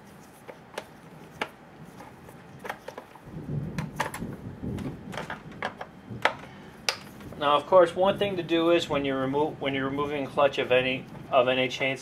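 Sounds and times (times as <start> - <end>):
low shuffling rumble: 3.2 - 12.0.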